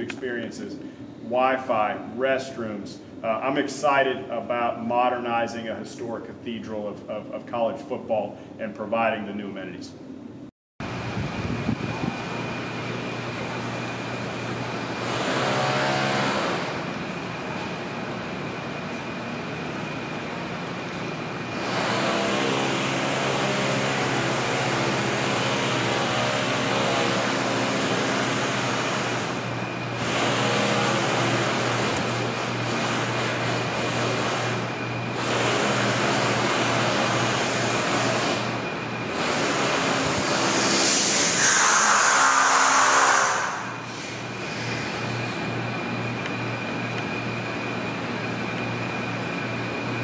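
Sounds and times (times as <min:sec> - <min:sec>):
motor-driven machine humming and rushing: 0:10.8 - 0:49.8.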